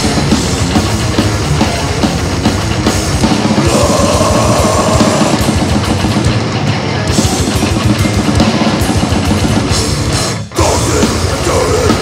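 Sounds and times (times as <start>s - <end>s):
distorted electric guitars: 0.0s - 12.0s
fast drumming: 0.0s - 12.0s.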